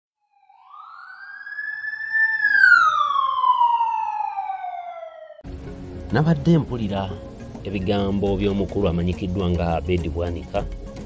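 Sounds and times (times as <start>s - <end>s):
siren wail: 0.2s - 5.4s.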